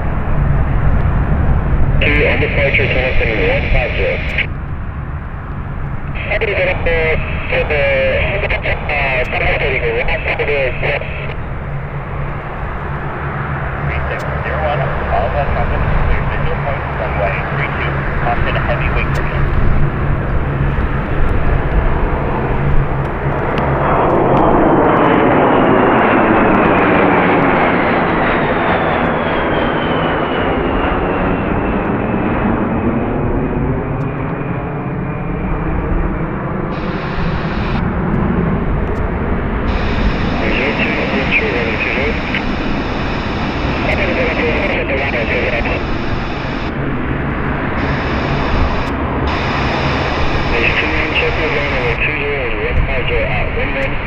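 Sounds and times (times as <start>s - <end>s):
jet passing overhead: 0.0s - 54.0s
propeller drone: 0.0s - 54.0s.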